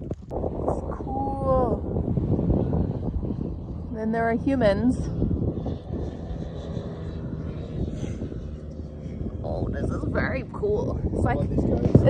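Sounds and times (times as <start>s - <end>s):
distant motor drone: 0.0s - 12.0s.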